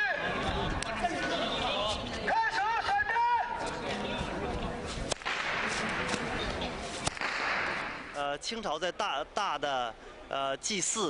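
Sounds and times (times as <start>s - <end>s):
whip cracking on stone: 5.1s - 6.3s, 7.0s - 8.1s.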